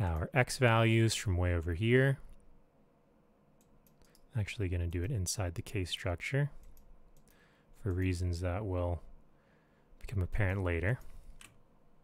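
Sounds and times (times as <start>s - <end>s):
computer mouse clicks: 3.6s - 4.3s, 6.6s - 8.2s.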